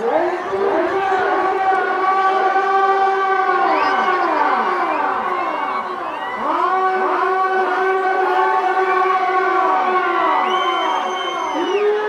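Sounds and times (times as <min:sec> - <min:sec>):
siren-like wail: 0:00.0 - 0:12.0.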